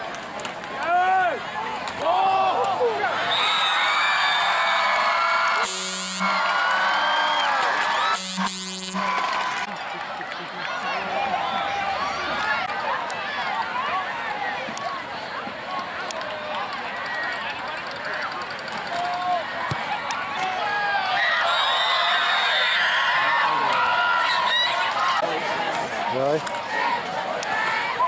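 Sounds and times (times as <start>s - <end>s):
crowd chatter: 0.0s - 28.0s
crowd cheering and yelling: 0.0s - 28.0s
short loud blasts: 5.6s - 6.6s.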